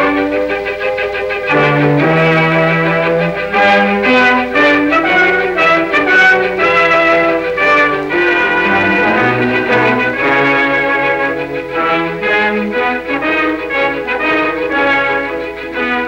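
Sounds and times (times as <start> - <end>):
orchestral film music: 0.0 - 16.0.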